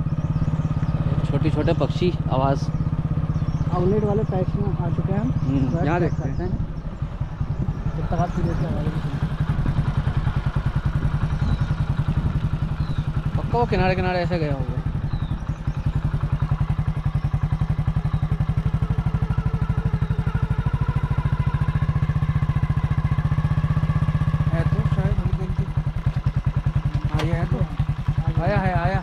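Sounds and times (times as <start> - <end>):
motorcycle engine running: 0.0 - 29.0.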